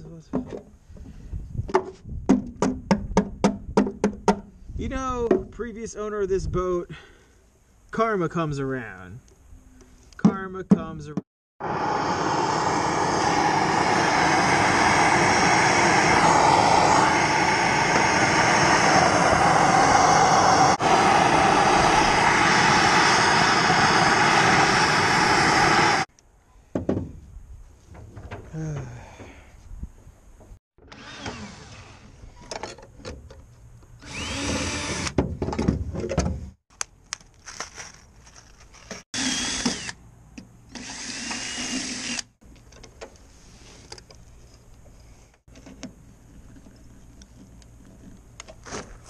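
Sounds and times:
gas torch flame rushing: 0:11.6 - 0:26.1.

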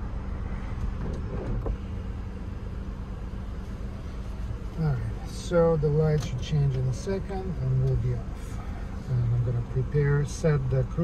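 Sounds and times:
car engine idling: 0:00.0 - 0:11.0
man talking: 0:04.8 - 0:11.0.

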